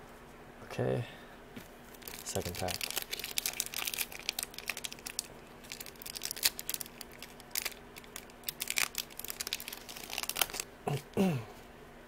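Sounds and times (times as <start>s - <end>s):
foil pack crinkling and tearing: 1.9s - 10.7s.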